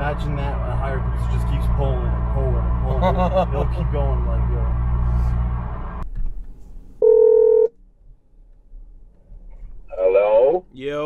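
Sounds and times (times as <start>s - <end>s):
car engine and road drone: 0.0s - 11.0s
phone call tone: 7.0s - 7.7s.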